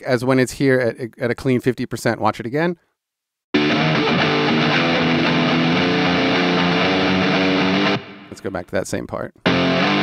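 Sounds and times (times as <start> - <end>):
distorted electric guitar: 3.6 - 8.6, 9.4 - 10.0.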